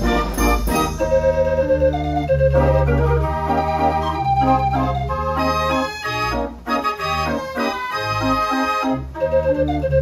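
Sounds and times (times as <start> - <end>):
street organ playing a tune: 0.0 - 10.0.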